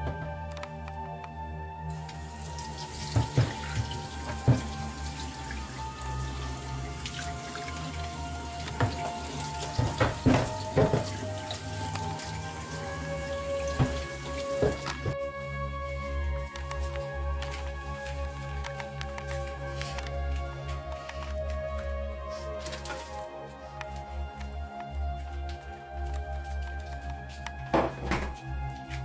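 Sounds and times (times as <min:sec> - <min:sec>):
background music: 0:00.0 - 0:29.0
tap water splashing on board: 0:02.0 - 0:15.2.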